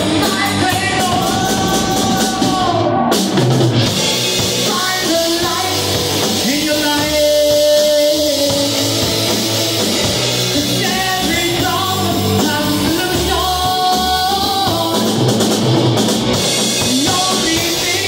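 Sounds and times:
person singing: 0.0 - 3.4, 4.5 - 9.3, 10.4 - 15.4, 16.8 - 18.0
distorted electric guitars: 0.0 - 18.0
drum kit: 0.0 - 18.0.

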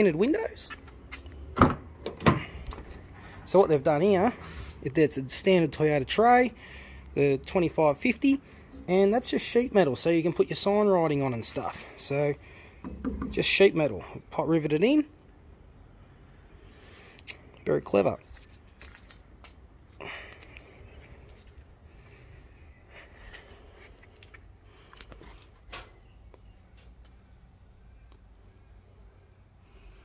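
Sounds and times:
faint outdoor background noise: 0.0 - 30.0.

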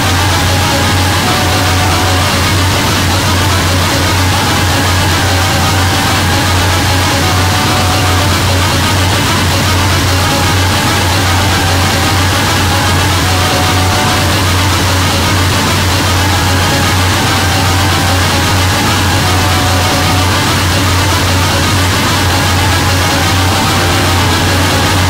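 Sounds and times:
low drone: 0.0 - 25.0.

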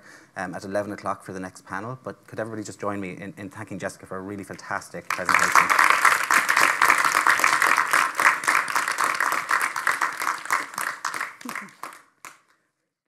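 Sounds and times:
audience applauding: 5.1 - 12.4.

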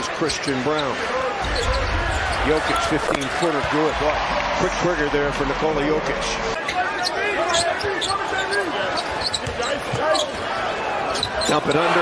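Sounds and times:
crowd noise and voices: 0.0 - 12.0.

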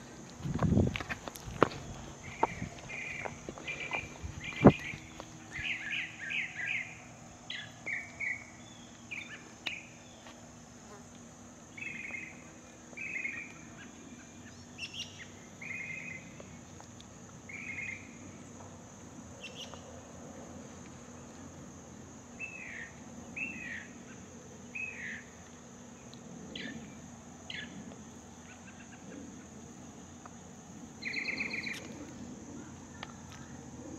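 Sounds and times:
steady high-pitched hiss: 0.0 - 33.9
small birds chirping: 1.3 - 10.4, 11.7 - 18.2, 19.4 - 19.9, 31.0 - 33.6.

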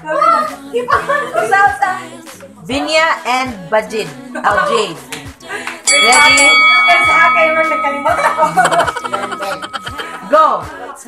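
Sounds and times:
loud excited voices: 3.9 - 10.6
bell-like chime ringing: 5.9 - 10.5.

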